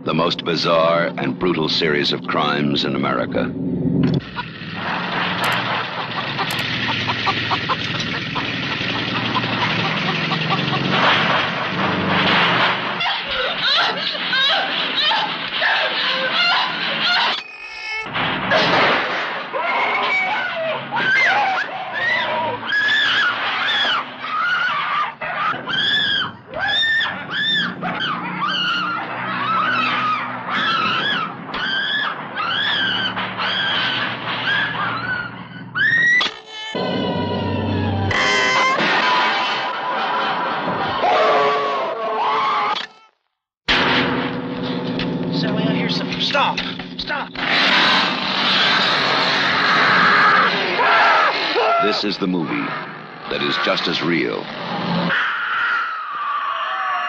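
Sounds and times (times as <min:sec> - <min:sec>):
chainsaw engine buzzing: 0:04.2 - 0:11.0, 0:44.3 - 0:55.1
high-pitched cry: 0:13.0 - 0:18.1
high-pitched screaming: 0:19.6 - 0:39.5, 0:47.4 - 0:54.5.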